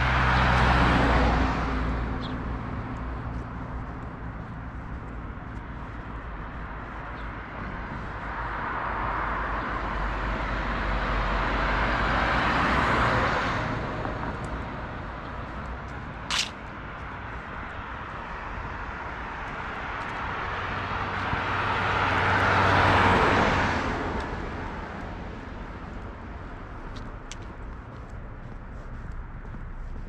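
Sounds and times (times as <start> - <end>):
cars passing: 0.0 - 30.0
short sharp click: 16.3 - 16.6.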